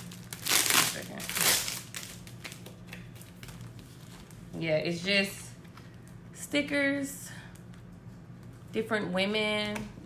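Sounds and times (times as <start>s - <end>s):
plastic packaging crinkling: 0.0s - 4.4s.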